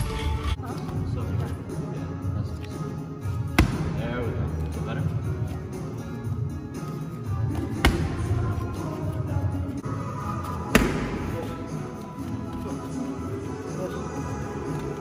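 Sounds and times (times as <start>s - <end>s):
background music: 0.0s - 15.0s
strikes smacking belly pad: 3.5s - 4.0s, 7.5s - 8.3s, 10.7s - 11.3s.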